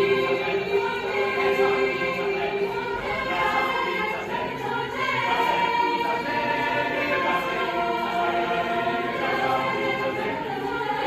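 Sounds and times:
choir singing in harmony: 0.0s - 11.0s.

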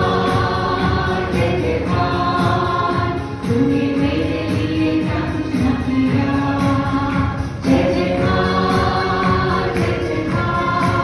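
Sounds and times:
congregation singing: 0.0s - 11.0s
woman singing into a microphone: 0.0s - 11.0s.

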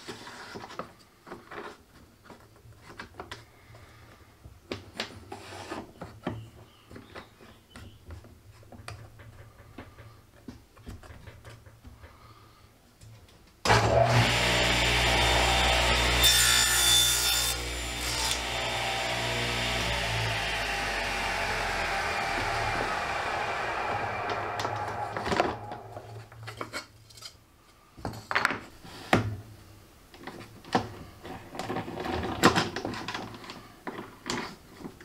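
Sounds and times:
table saw running: 13.7s - 26.4s.

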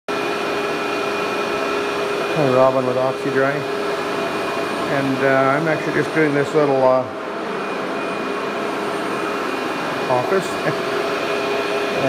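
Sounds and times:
vacuum cleaner on carpet: 0.1s - 12.0s.

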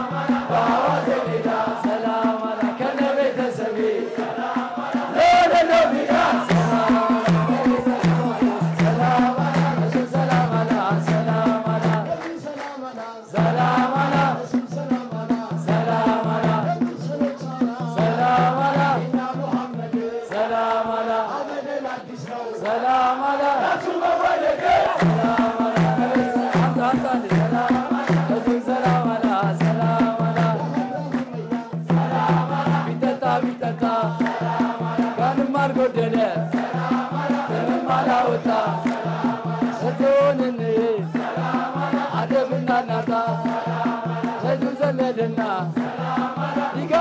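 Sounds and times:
men chanting: 0.0s - 47.0s
person singing through a microphone: 0.0s - 47.0s.

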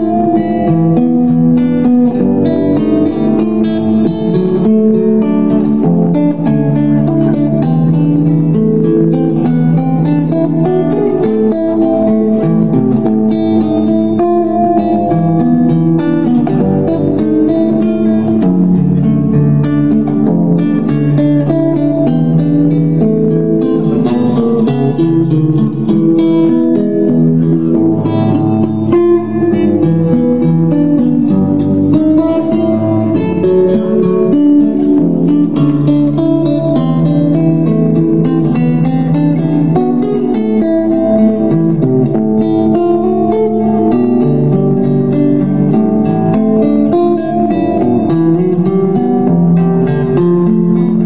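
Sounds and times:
acoustic guitar melody: 0.0s - 51.0s.

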